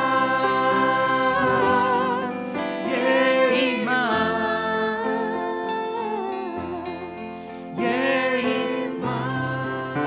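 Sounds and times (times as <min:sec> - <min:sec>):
voices singing a long note: 0:00.0 - 0:06.3, 0:07.8 - 0:10.0.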